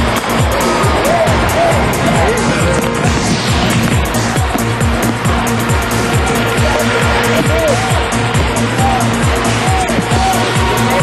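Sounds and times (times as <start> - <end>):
music with fast pulsing beat: 0.0 - 11.0.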